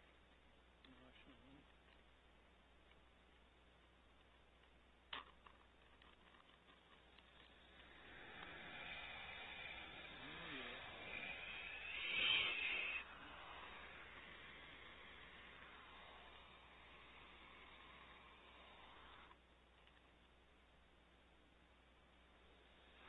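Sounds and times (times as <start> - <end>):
owlets hissing: 7.0 - 19.4, 22.1 - 23.0.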